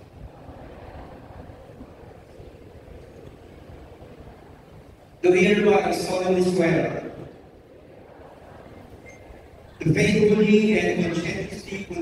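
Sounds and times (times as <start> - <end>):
low rumble in hall: 0.0 - 12.0.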